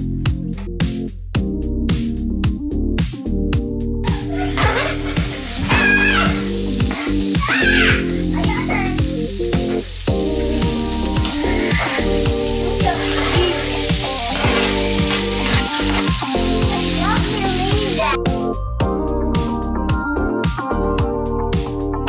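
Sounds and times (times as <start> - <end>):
background music with steady beat: 0.0 - 22.0
onion sizzling in oil: 4.1 - 18.2
stirring in frying pan: 4.1 - 18.2.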